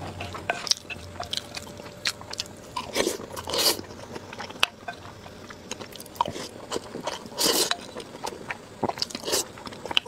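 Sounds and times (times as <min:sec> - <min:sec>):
chewing food: 0:00.2 - 0:10.0.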